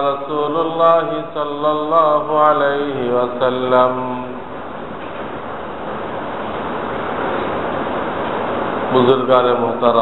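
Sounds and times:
steady rushing hiss: 0:00.0 - 0:10.0.

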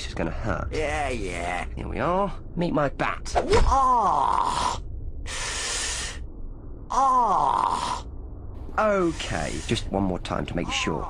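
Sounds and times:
steady hiss: 0:04.7 - 0:06.3, 0:08.6 - 0:11.0.

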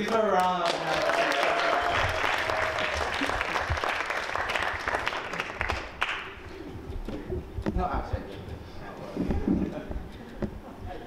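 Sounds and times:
audience applauding: 0:00.0 - 0:06.6.

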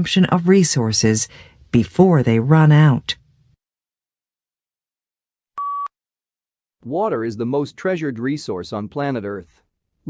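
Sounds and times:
person reading aloud: 0:00.0 - 0:03.2
short electronic beep: 0:05.6 - 0:05.9.

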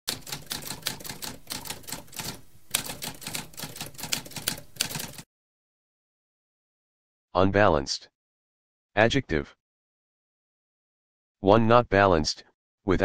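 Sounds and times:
typewriter keys clacking: 0:00.1 - 0:05.2.

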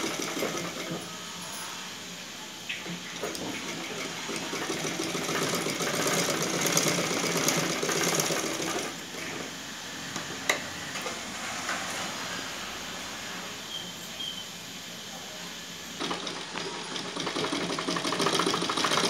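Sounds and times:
sewing machine running: 0:00.0 - 0:01.2, 0:03.1 - 0:09.6, 0:16.0 - 0:19.0.

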